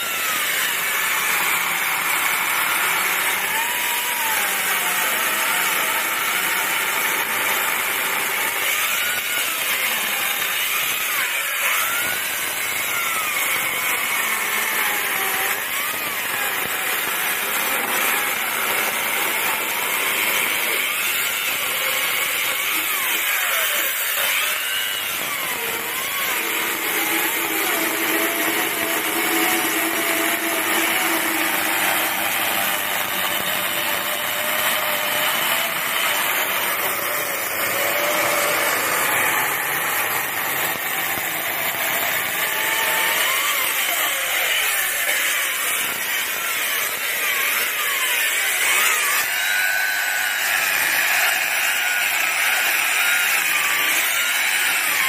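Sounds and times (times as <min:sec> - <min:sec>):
electric chainsaw cutting wood: 0:00.0 - 0:55.0.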